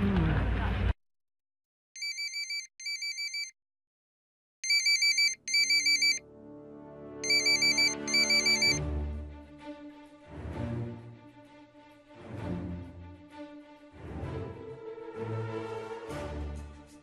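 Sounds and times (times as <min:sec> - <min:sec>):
mobile phone ringtone trilling: 0:02.0 - 0:03.5, 0:04.6 - 0:06.2, 0:07.2 - 0:08.8.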